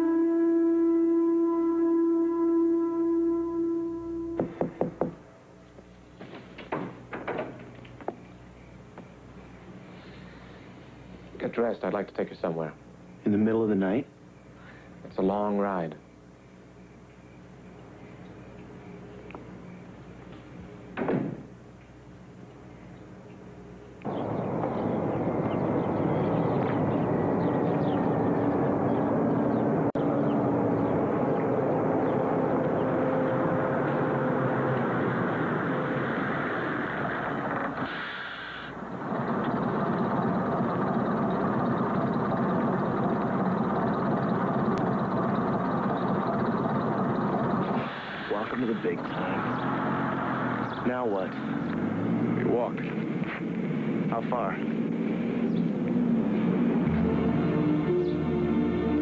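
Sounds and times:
bus diesel engine running: 17.6 - 59.0.

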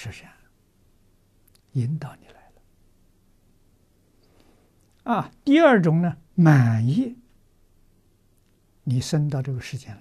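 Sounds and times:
elderly man speaking: 0.0 - 0.5, 1.6 - 2.6, 5.0 - 7.3, 8.8 - 10.0.

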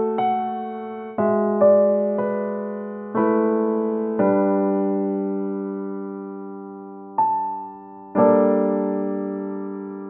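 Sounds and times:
slow piano chord: 0.0 - 10.0.

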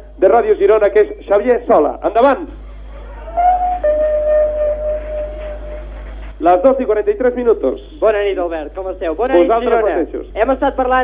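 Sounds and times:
steady electronic tone: 3.3 - 6.0.

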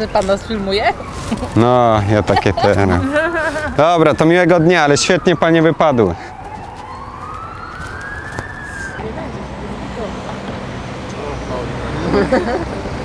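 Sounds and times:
distant siren wailing: 0.0 - 11.5
street background: 0.0 - 13.0.

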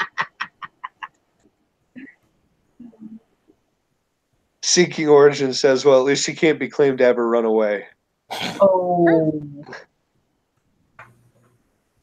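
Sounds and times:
person laughing: 0.0 - 1.1.

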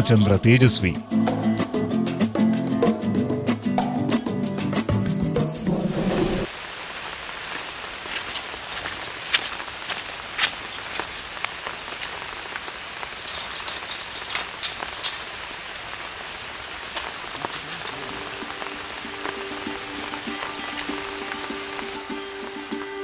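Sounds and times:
rain on foliage: 6.4 - 23.0
soft music with held tones: 18.2 - 23.0.

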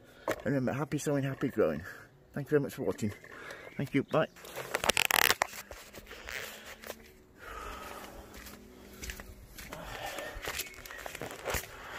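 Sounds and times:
camera rustling against clothing: 4.3 - 11.9.

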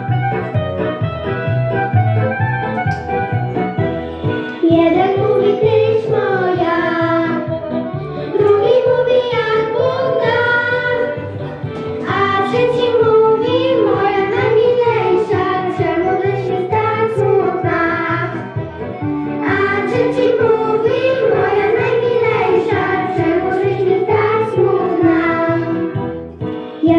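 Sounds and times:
low musical accompaniment: 0.0 - 26.9
girls singing into microphones: 4.6 - 7.5, 8.3 - 18.5, 19.4 - 26.0.

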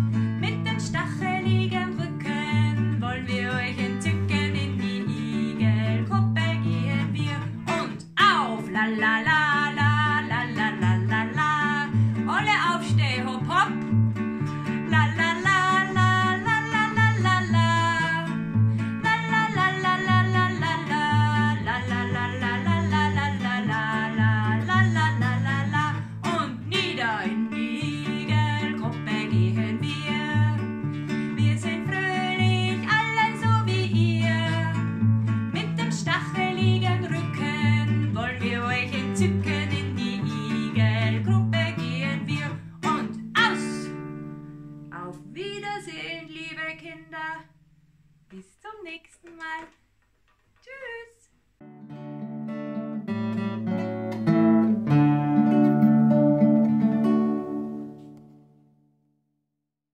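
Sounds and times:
woman singing: 0.0 - 44.0, 44.9 - 47.5, 48.3 - 49.8, 50.6 - 51.3
strummed classical guitar: 0.0 - 45.9, 51.6 - 58.7.

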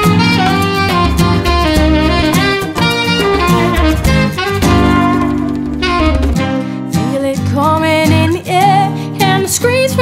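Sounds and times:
upright bass notes: 0.0 - 6.7
saxophone: 0.0 - 7.8
piano: 0.0 - 10.0
drum strokes: 1.2 - 6.6.

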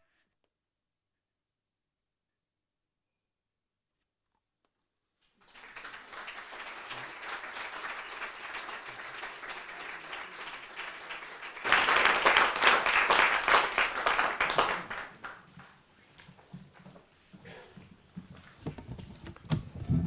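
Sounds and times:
audience applauding: 5.4 - 15.8.

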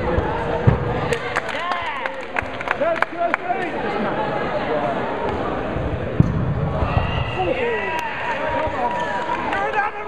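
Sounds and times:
players shouting: 6.7 - 10.0.

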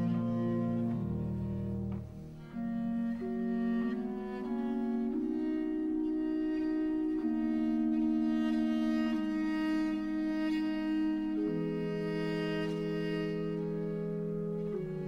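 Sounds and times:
bowed strings playing slow notes: 0.0 - 15.0.

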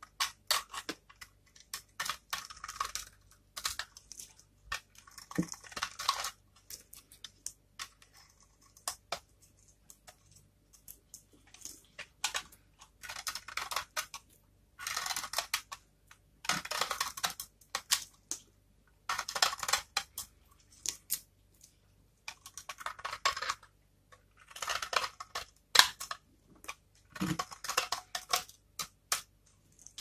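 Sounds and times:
knife shaving crackling soap: 0.0 - 30.0.

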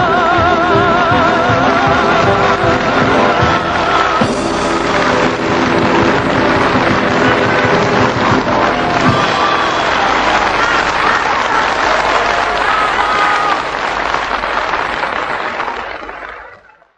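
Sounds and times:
audience applauding: 0.0 - 16.9.

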